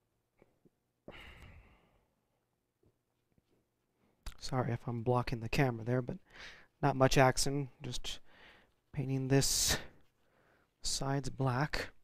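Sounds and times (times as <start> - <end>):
person sighing: 1.1 - 1.9.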